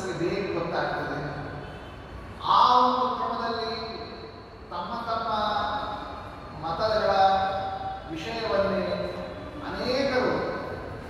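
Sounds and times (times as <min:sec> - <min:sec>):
man speaking into a microphone: 0:00.0 - 0:01.8, 0:02.4 - 0:11.0.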